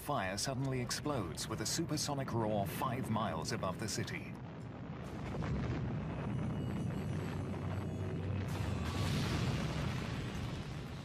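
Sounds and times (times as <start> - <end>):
deep rumbling roar of explosion: 4.4 - 11.0.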